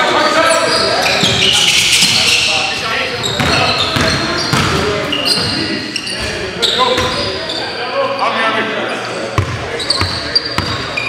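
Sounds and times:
players' voices: 0:00.0 - 0:11.0
sneaker squeaks: 0:00.3 - 0:11.0
ball bouncing on hardwood court: 0:03.3 - 0:04.9, 0:09.4 - 0:10.8.

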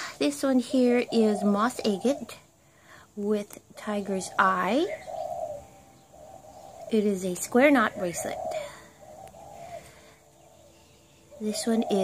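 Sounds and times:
dove cooing: 0:00.0 - 0:02.5, 0:03.9 - 0:10.7, 0:11.3 - 0:12.0.

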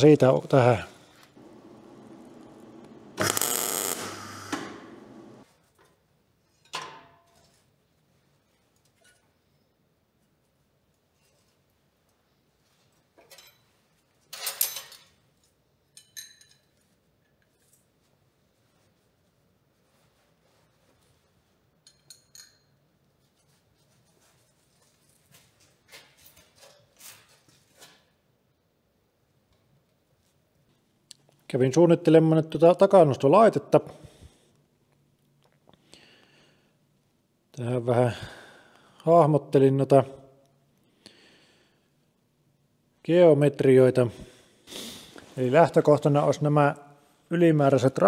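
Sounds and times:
electric arc welding: 0:01.4 - 0:05.4.

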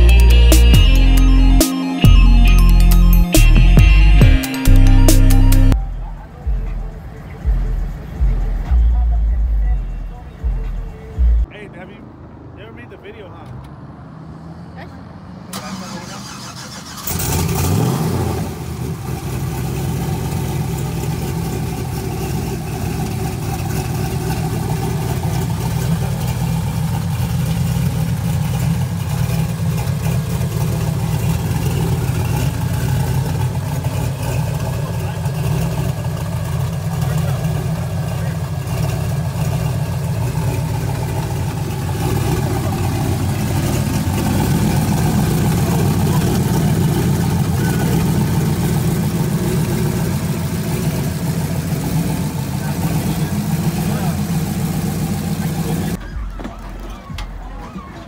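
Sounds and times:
pickup engine starting and idling: 0:00.0 - 0:11.5, 0:15.5 - 0:58.0.

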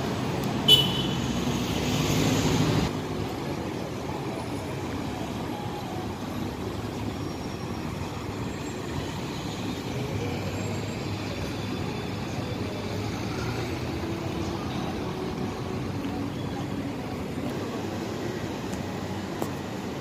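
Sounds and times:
city street traffic hum: 0:00.0 - 0:20.0.

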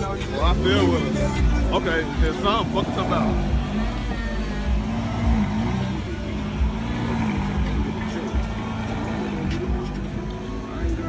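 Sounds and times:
sports car engine revving: 0:00.0 - 0:11.0.

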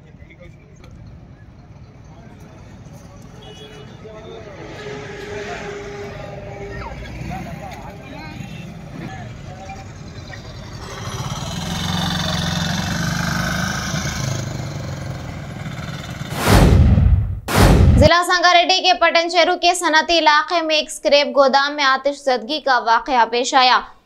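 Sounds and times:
heavy vehicle passing: 0:04.4 - 0:08.9, 0:10.0 - 0:18.1.

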